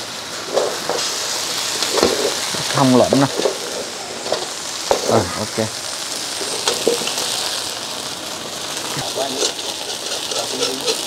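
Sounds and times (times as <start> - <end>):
batter sizzling in hot oil: 0.0 - 11.0.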